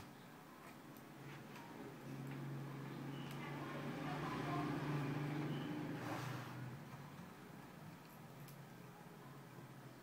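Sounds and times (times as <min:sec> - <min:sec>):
low engine-like hum: 0:01.7 - 0:09.8.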